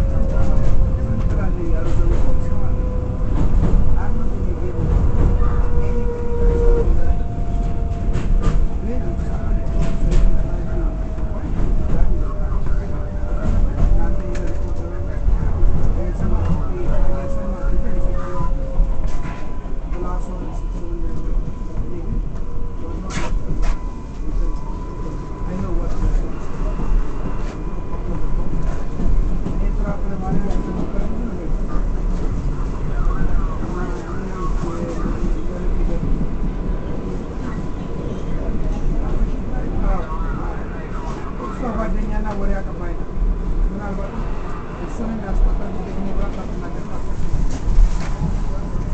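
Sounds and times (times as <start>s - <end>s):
people talking indistinctly: 0.0s - 48.9s
train wheels rumbling on track: 0.0s - 48.9s.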